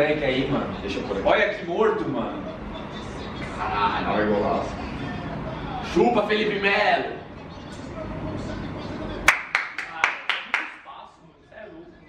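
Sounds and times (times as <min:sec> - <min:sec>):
man clapping hands: 0:09.2 - 0:10.8.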